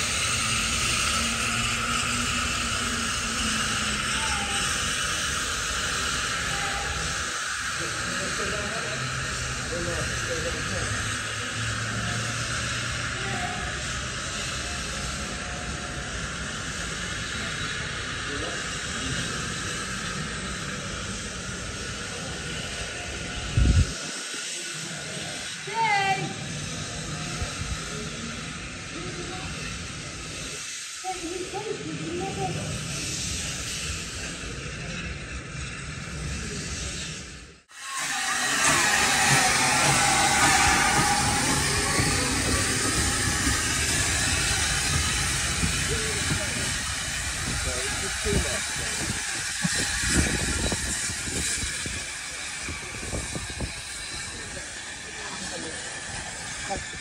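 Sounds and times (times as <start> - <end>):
steam locomotive hissing: 0.0 - 57.0
voices: 0.0 - 57.0.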